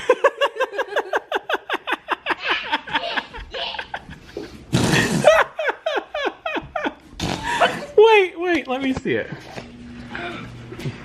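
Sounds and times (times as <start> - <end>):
person laughing: 0.0 - 8.0.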